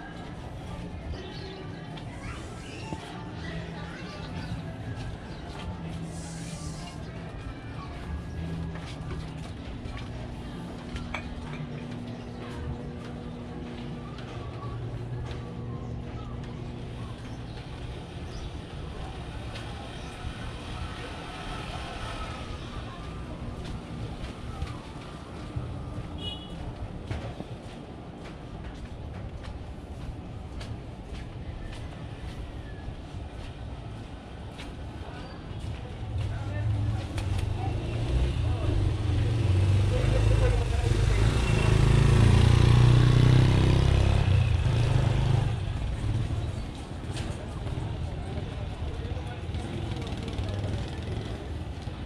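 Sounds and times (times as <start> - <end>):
distant traffic rumble: 0.0 - 52.0
motorcycle engine passing by: 36.6 - 46.6.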